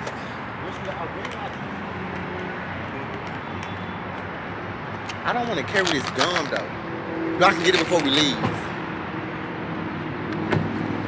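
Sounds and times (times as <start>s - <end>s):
street and traffic hum: 0.0s - 11.0s.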